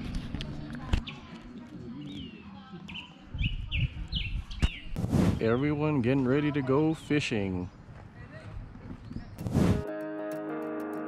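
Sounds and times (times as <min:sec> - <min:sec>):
songbird chirping: 0:00.9 - 0:09.5.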